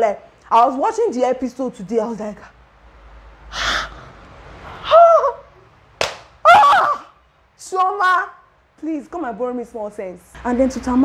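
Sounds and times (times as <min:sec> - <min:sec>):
sharp hand slap: 0:06.0 - 0:06.4
woman's shocked exclamations: 0:06.4 - 0:07.2.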